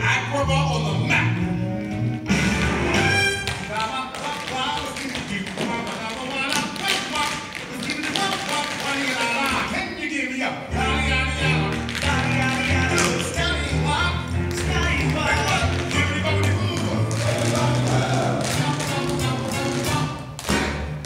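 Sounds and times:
dance music: 0.0s - 9.7s, 10.7s - 21.0s
tap shoes on stage floor: 1.8s - 10.0s, 11.2s - 21.0s.

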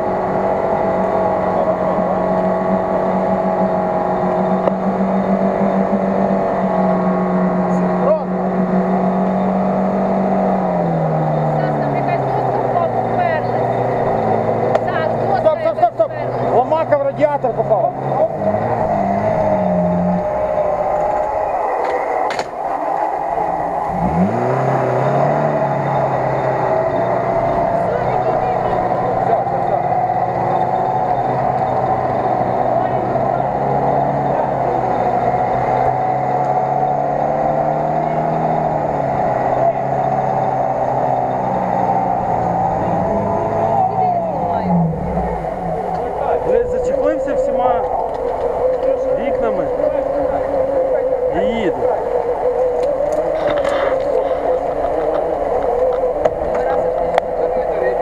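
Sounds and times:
engine revving hard: 0.0s - 58.0s
vehicle churning through mud: 0.0s - 58.0s.

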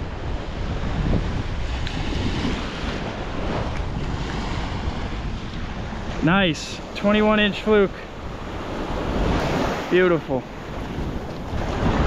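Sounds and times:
waves washing on sandy beach: 0.0s - 12.0s
wind buffeting microphone: 0.0s - 12.0s.

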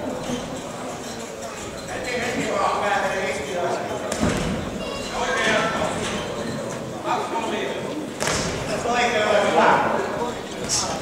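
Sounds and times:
voices calling out in echoing hall: 0.0s - 11.0s.

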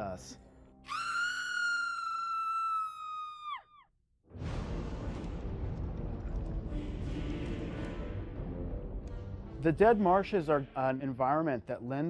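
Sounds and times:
long high-pitched scream: 0.9s - 3.9s
film score and ambience: 4.3s - 11.6s.

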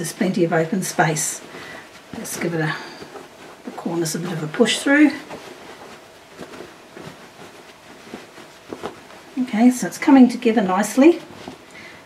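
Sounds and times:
cloth bag rustling: 0.0s - 12.0s
soft cloth brushes: 0.0s - 12.0s.

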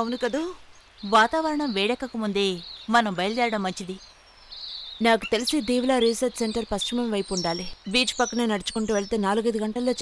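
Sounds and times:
faint bird chirps: 0.0s - 10.0s
person speaking: 5.0s - 10.0s.

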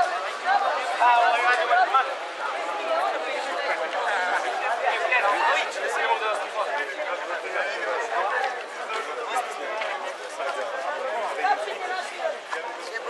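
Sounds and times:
crowd of teenagers chattering: 0.0s - 13.0s.

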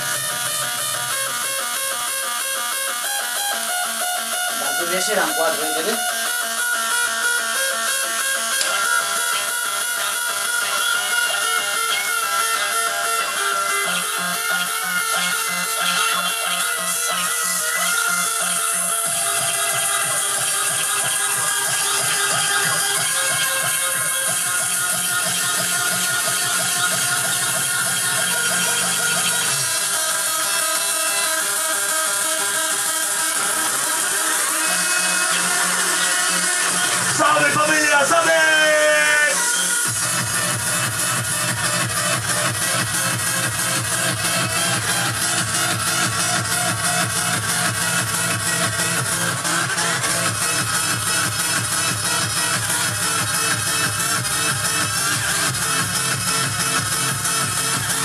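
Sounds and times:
fast electronic dance music: 0.0s - 58.0s.

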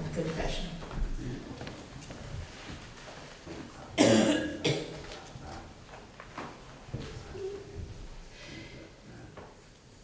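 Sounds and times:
person coughing: 4.0s - 5.0s.

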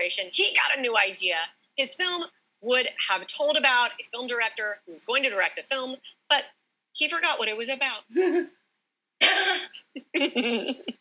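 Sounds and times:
woman coughing: 9.2s - 9.8s.

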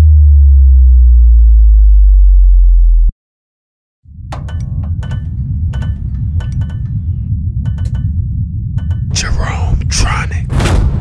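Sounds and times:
synthesized bass drop: 0.0s - 3.1s.

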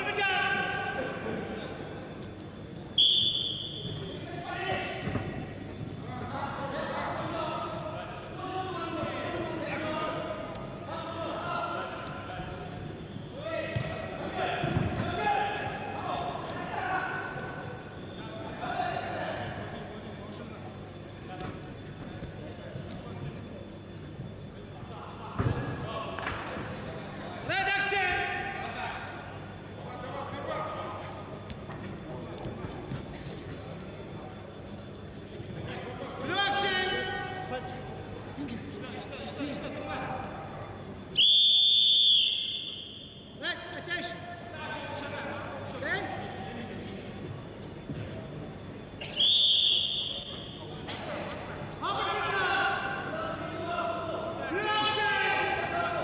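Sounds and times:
loud shout: 54.5s - 56.0s.

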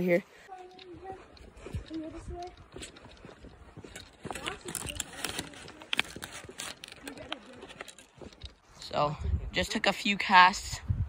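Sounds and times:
footsteps on dirt trail: 0.0s - 9.0s.

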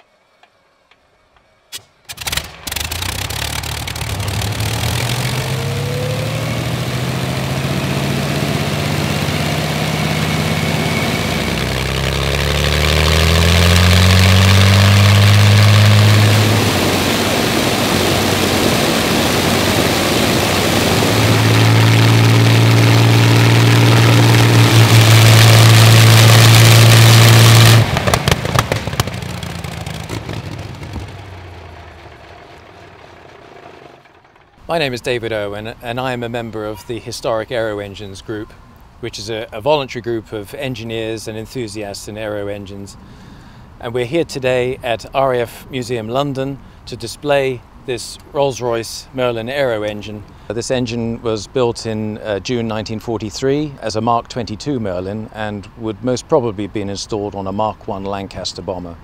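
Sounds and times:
aircraft engine with propeller running: 0.0s - 36.1s, 42.6s - 43.8s.

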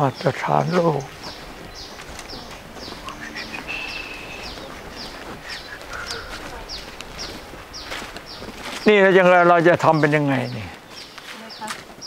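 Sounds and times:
bird calling short falling notes: 1.3s - 8.4s.

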